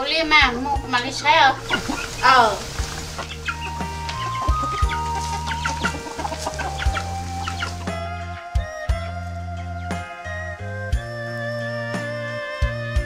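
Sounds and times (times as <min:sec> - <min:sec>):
chickens clucking: 0:00.0 - 0:08.0
background music with low notes: 0:00.0 - 0:13.0.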